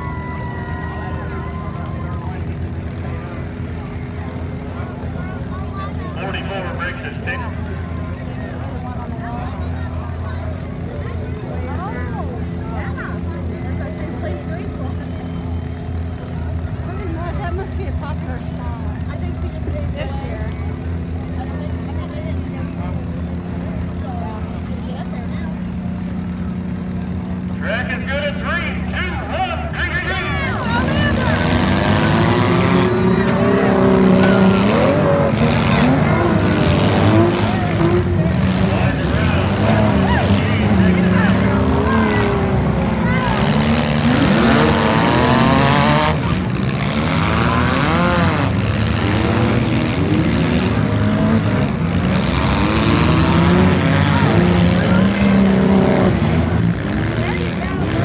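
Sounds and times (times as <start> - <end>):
car engines idling: 0.0 - 58.0
car engines revving: 0.0 - 58.0.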